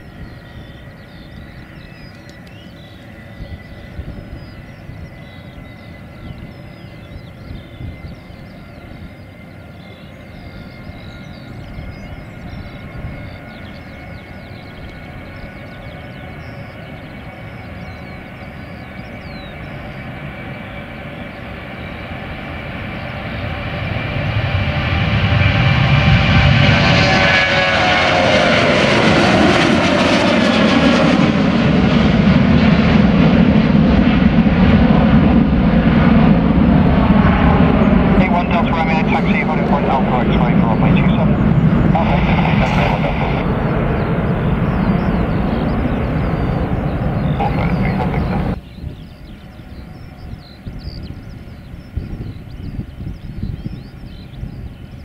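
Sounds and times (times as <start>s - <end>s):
jet engines roaring at takeoff: 0.0s - 55.0s.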